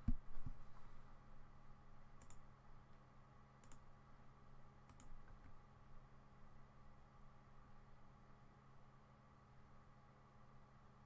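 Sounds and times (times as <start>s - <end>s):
low room hum: 0.0s - 11.0s
faint sharp clicks: 2.2s - 2.4s, 3.6s - 3.8s, 4.9s - 5.6s.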